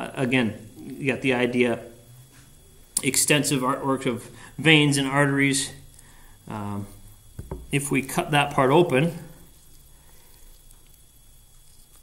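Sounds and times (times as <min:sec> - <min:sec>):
faint high whine: 0:00.0 - 0:12.0
steady low hum: 0:00.0 - 0:12.0.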